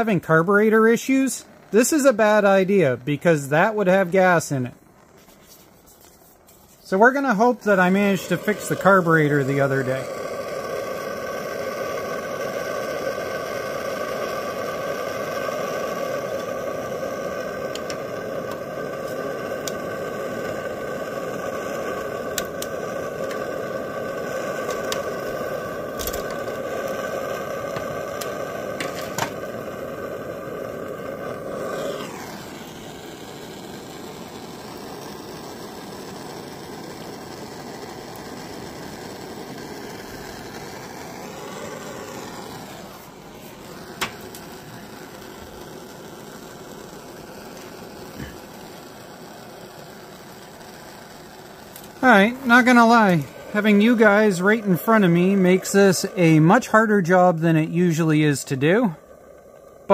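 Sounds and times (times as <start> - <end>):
propane torch hissing: 0.0 - 59.9.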